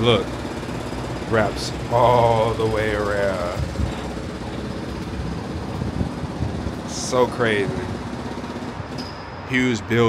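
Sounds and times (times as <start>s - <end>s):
distant city traffic: 0.0s - 10.0s
wind gusting against microphone: 2.4s - 10.0s.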